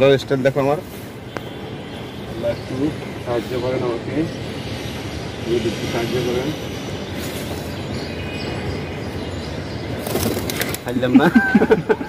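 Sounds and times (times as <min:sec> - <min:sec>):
city traffic hum: 0:00.0 - 0:12.0.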